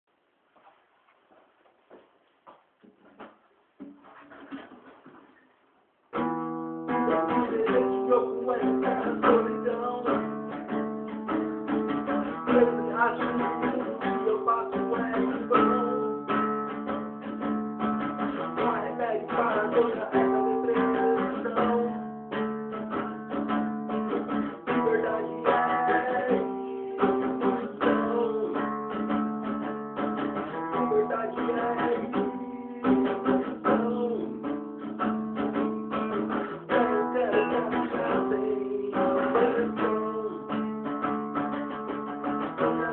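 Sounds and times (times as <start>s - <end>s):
acoustic guitar strumming: 6.1s - 42.9s.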